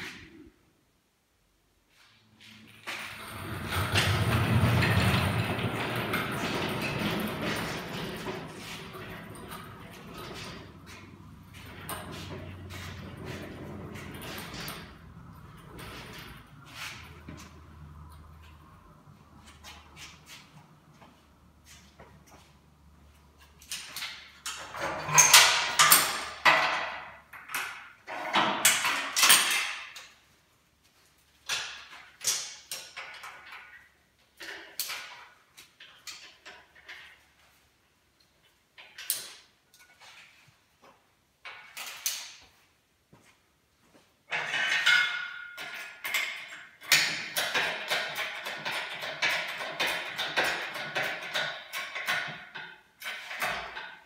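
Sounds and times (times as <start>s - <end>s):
metal chain clanking and rattling: 2.7s - 22.5s, 23.4s - 30.2s, 44.3s - 54.0s.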